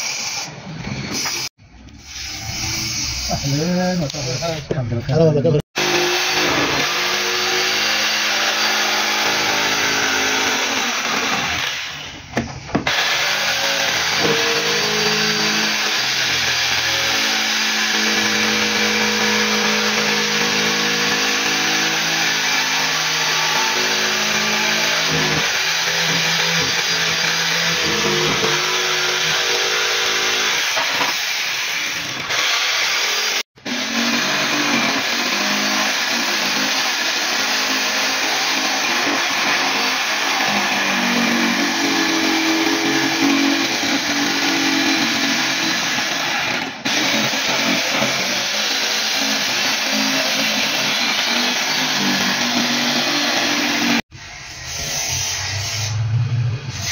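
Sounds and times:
jigsaw sawing through plywood: 0:05.7 - 0:12.1, 0:12.8 - 0:54.1.

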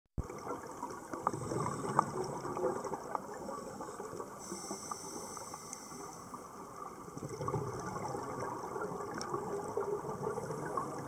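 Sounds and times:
underwater bubbles gurgling: 0:00.2 - 0:11.0.

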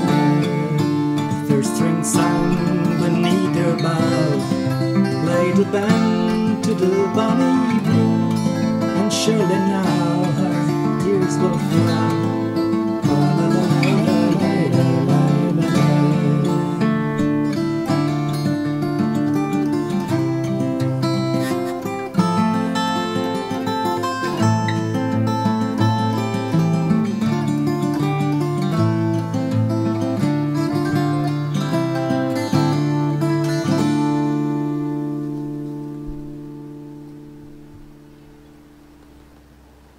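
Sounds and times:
fingerpicked acoustic guitar: 0:00.0 - 0:39.9.

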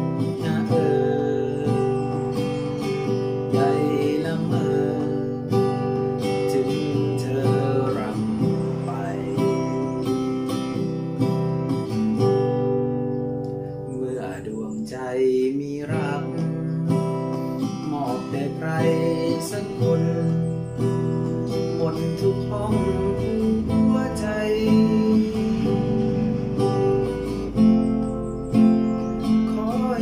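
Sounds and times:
man singing: 0:00.0 - 0:10.4, 0:13.9 - 0:27.2, 0:29.3 - 0:30.0
acoustic guitar strumming: 0:00.0 - 0:30.0.

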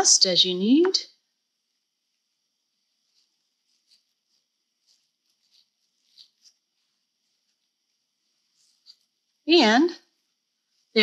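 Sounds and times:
fabric rustling: 0:01.8 - 0:11.0.

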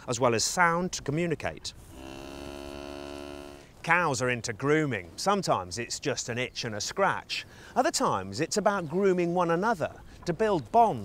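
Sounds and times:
cow mooing: 0:01.9 - 0:03.7.

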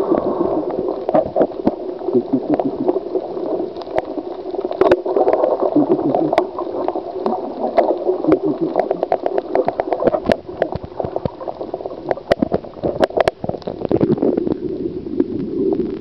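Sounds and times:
underwater gurgling water: 0:00.0 - 0:16.0.

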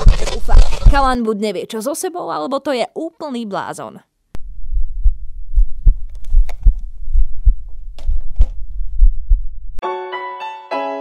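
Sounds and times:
deep low rumble: 0:04.4 - 0:09.8
piano music: 0:09.8 - 0:11.0.

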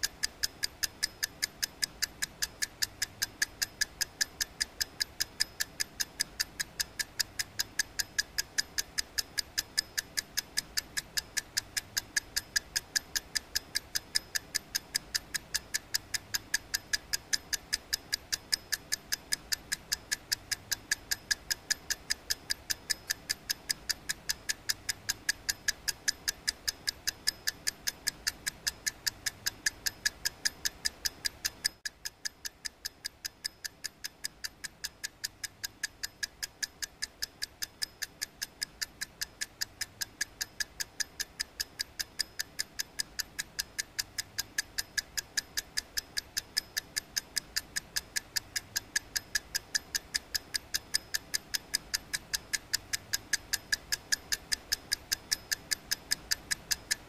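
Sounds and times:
steady ticking: 0:00.0 - 0:57.0.

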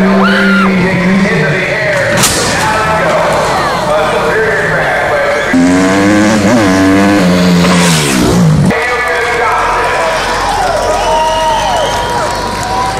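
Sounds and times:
car engine revving: 0:00.0 - 0:08.8.

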